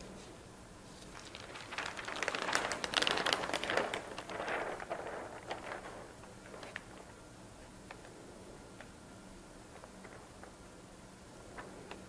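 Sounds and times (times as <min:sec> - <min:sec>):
paper rustling and crackling: 0:00.9 - 0:07.2, 0:09.7 - 0:10.6, 0:11.5 - 0:12.0.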